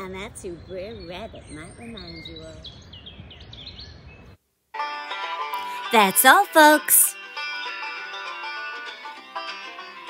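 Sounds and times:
small birds chirping: 0:00.0 - 0:04.4
outdoor background noise: 0:00.0 - 0:04.7
music: 0:04.8 - 0:10.0.

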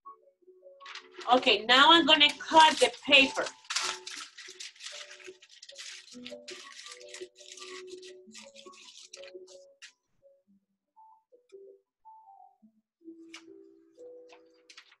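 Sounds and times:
paper crinkling: 0:00.8 - 0:10.0, 0:14.2 - 0:15.0.

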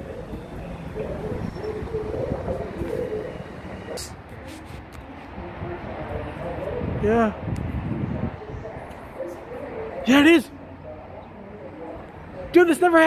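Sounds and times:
electric train rumbling: 0:00.0 - 0:04.4.

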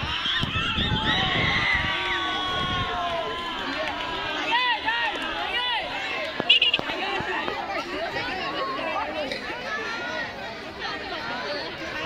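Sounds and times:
young spectators shouting: 0:00.0 - 0:12.0.

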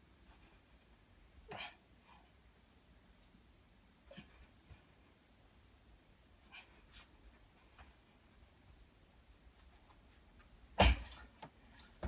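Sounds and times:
man exercising on bar: 0:00.0 - 0:12.0
loud thump landing on floor: 0:10.8 - 0:11.2.

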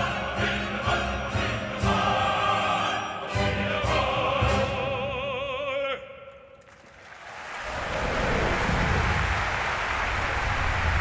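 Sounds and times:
audience applauding: 0:06.6 - 0:11.0.

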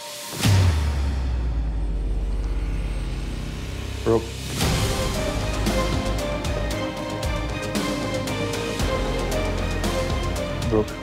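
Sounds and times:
low rumbling suspense drone: 0:00.7 - 0:07.7.

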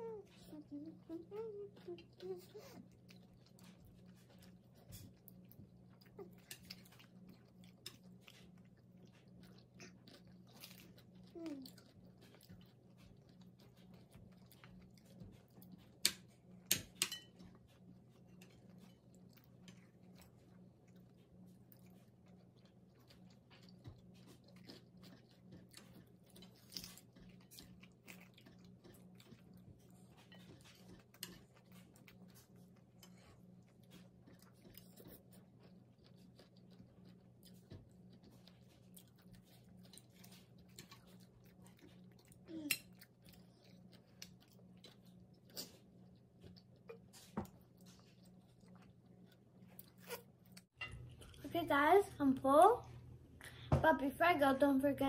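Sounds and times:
chewing crisp leaves: 0:00.0 - 0:53.0.

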